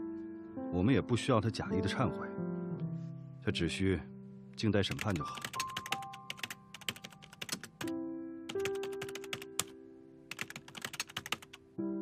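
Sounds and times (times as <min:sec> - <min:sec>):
slow piano notes: 0:00.0 - 0:12.0
keyboard typing clicks: 0:04.9 - 0:07.9, 0:08.5 - 0:09.7, 0:10.3 - 0:11.6.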